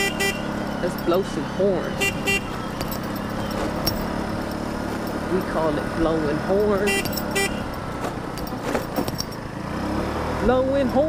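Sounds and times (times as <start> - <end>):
road and wind noise: 0.0 - 11.0
scooter engine running: 0.0 - 11.0.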